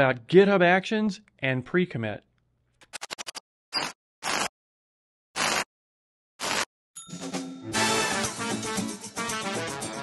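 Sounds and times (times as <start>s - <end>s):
scratchy noise bursts: 5.4s - 5.7s.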